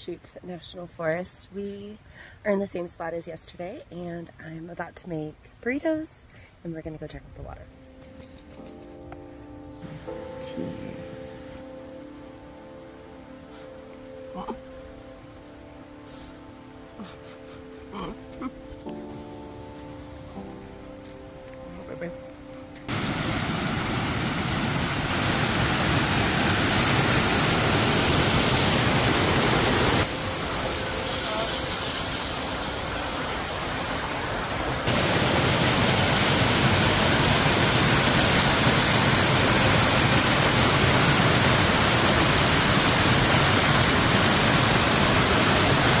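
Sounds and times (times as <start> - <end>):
water rushing over rocks: 22.9 - 46.0.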